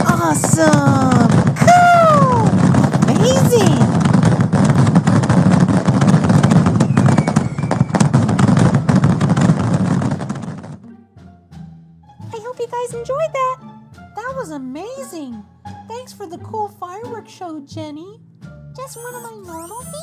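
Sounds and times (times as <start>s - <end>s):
fireworks crackling and popping: 0.0s - 10.8s, 18.9s - 20.0s.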